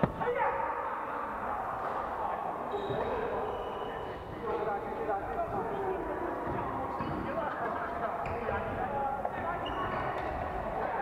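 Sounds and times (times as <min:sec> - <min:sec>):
players chattering: 0:00.2 - 0:11.0
shoe squeak: 0:02.7 - 0:04.3, 0:08.2 - 0:08.6, 0:09.6 - 0:10.2.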